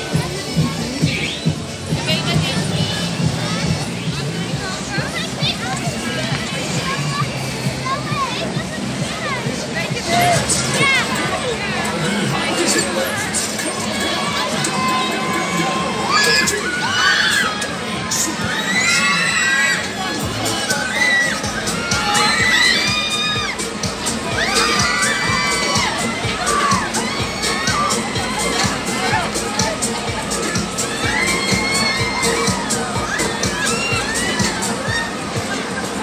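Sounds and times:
riders screaming and shouting: 10.0s - 36.0s.

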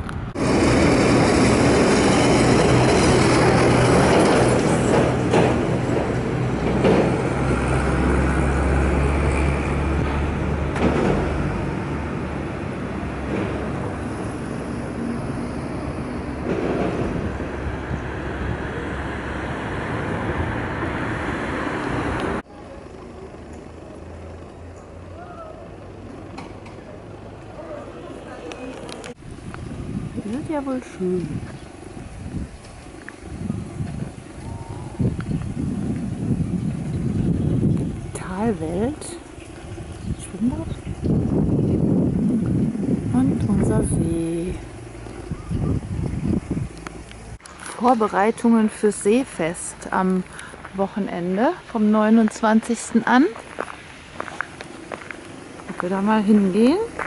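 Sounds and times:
passing vehicles engine drone: 0.0s - 57.0s
quiet street background: 0.0s - 57.0s.

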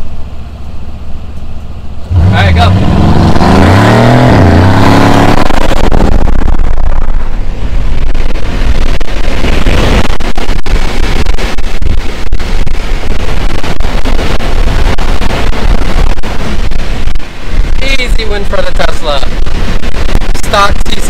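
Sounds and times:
car engine at full throttle: 0.0s - 21.0s
wind and road noise: 0.0s - 21.0s.

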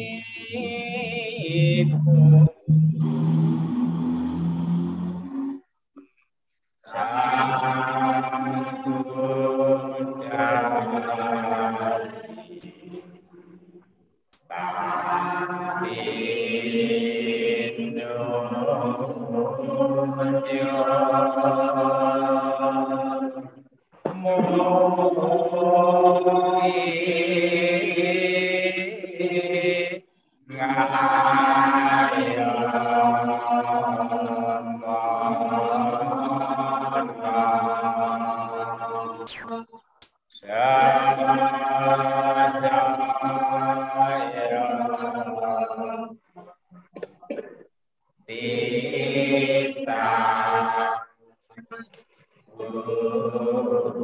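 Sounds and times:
man chanting: 0.0s - 3.4s
low voice chanting: 0.0s - 5.7s, 14.5s - 29.9s.

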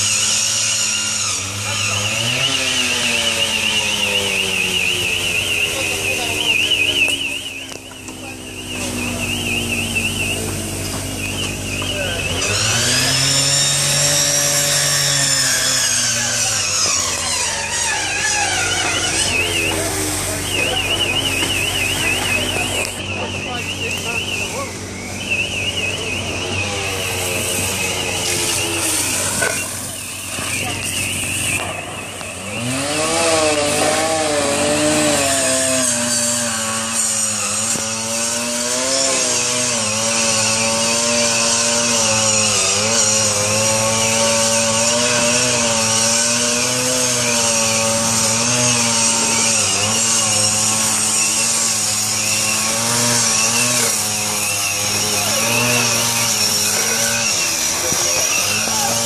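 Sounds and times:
chainsaw revving and cutting: 0.0s - 59.0s.

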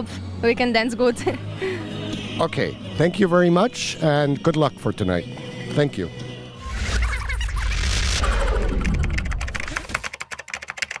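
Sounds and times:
rapid ticking clicks: 8.2s - 11.0s.

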